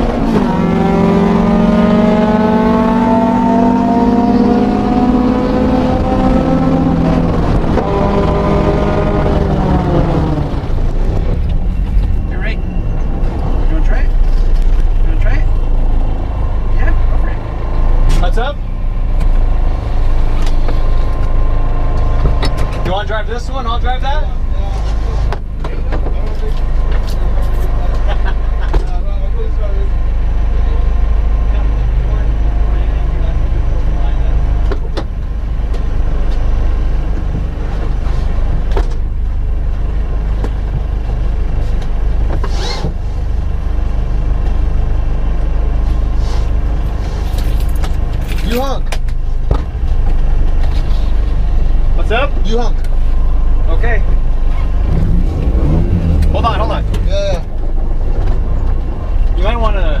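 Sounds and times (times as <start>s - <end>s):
car engines idling: 0.0s - 60.0s.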